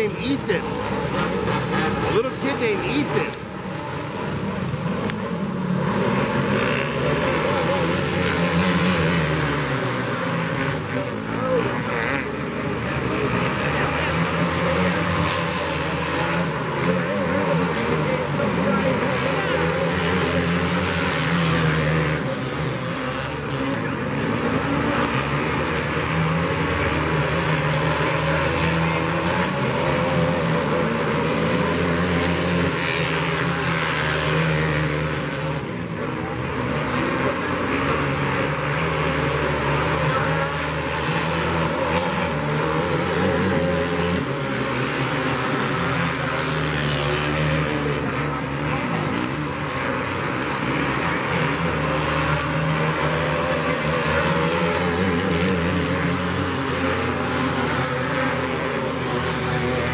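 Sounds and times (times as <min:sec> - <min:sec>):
small racing kart engines: 0:00.0 - 0:59.9.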